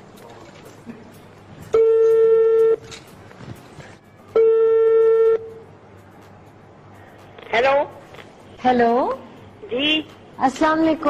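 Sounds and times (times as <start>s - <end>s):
telephone ringback tone: 1.8s - 2.8s, 4.3s - 5.5s.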